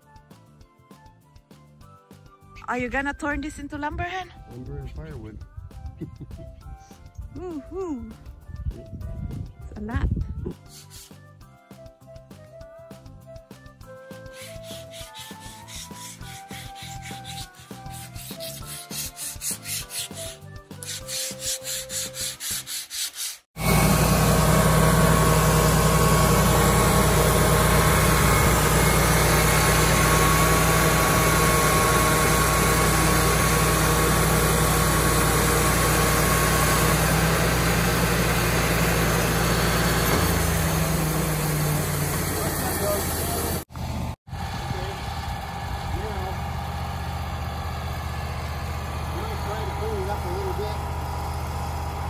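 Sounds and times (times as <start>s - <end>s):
quiet background music: 0.1s - 10.6s
sawdust blowing out: 10.6s - 11.2s, 14.1s - 43.7s
band blade turning: 10.7s - 11.1s, 14.2s - 23.4s
sawmill engine running: 14.1s - 22.4s, 23.6s - 52.0s.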